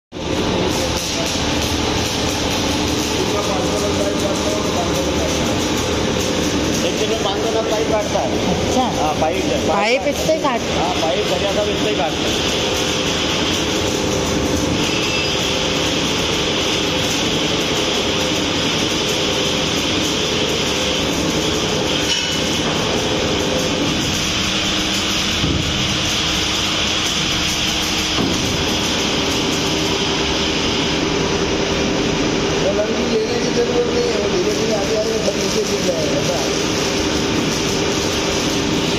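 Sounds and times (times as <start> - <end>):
band saw motor humming: 0.1 - 38.9.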